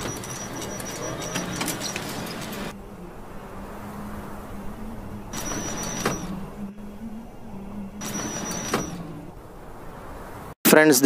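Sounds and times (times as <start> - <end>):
high thin ringing tone: 0.0 - 2.7, 5.3 - 9.0
steady low hum: 0.0 - 10.5
whooshing sweeps: 0.1 - 10.6.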